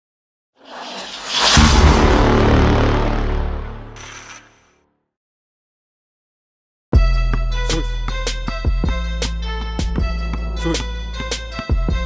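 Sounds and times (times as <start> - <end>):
whoosh: 0.6 - 4.1
heavy deep boom: 0.8 - 4.0.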